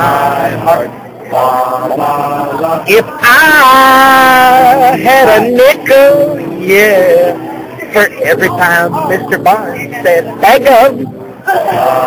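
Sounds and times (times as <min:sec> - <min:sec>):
men singing a cappella: 0:00.0 - 0:12.0.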